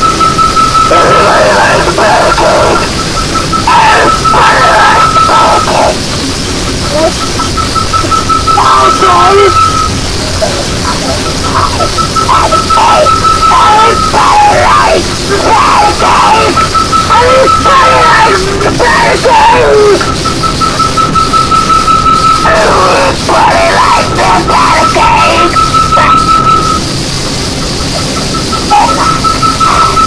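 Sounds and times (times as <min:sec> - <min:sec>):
high feedback whine: 0:00.0 - 0:30.0
wall of distorted noise: 0:00.0 - 0:30.0
distorted vocals: 0:00.7 - 0:30.0
heavily processed voice: 0:00.9 - 0:20.2, 0:22.3 - 0:30.0.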